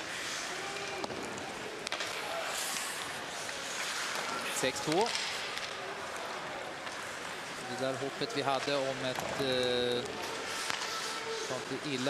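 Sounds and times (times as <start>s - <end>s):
crowd and on-ice noise: 0.0s - 12.0s
stick or puck clacks: 0.9s - 5.8s, 10.0s - 11.2s.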